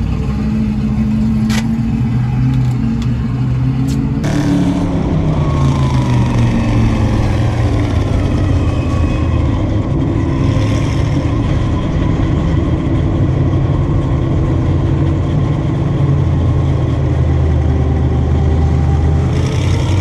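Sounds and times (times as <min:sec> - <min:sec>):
engines running: 0:00.0 - 0:20.0
race car engine from cockpit: 0:00.0 - 0:20.0.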